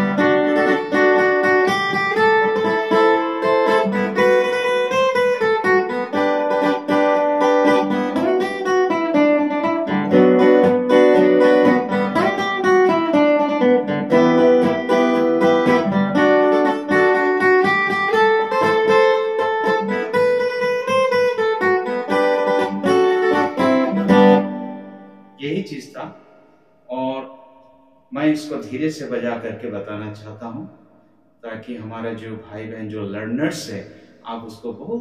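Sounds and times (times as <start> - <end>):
acoustic guitar: 0.0 - 30.0, 31.9 - 34.9.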